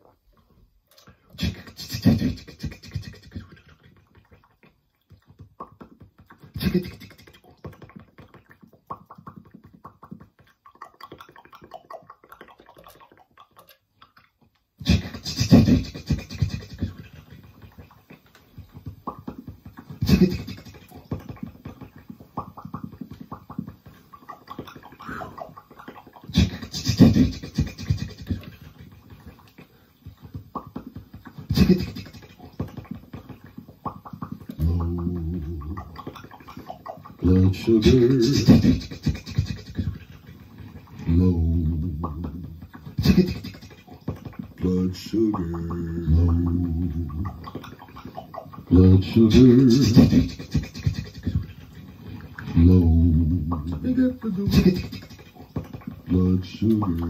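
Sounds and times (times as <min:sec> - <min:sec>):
beatbox vocal percussion: 0:00.0 - 0:57.0.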